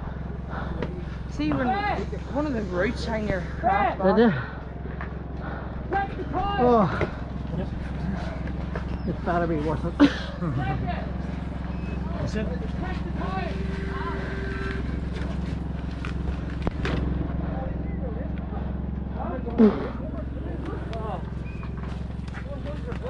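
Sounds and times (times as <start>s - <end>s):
low hum: 0.0s - 23.0s
people talking: 11.9s - 15.6s, 17.5s - 21.3s.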